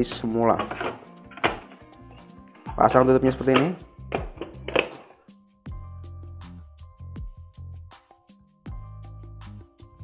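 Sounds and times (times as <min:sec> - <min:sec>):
plastic knocking on wooden bench: 0:00.0 - 0:01.8, 0:02.7 - 0:05.1
background music with bass: 0:00.0 - 0:10.0.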